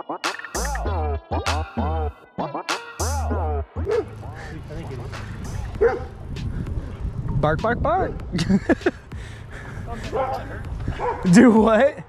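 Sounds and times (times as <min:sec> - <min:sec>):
riding noise: 0:03.0 - 0:12.0
low wind: 0:03.2 - 0:12.0
dog barking: 0:03.8 - 0:04.1, 0:05.8 - 0:06.1, 0:11.0 - 0:11.3.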